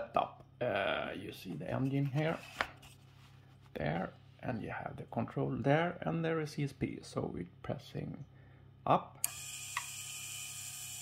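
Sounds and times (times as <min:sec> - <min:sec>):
geared motor whine: 0:09.3 - 0:11.0.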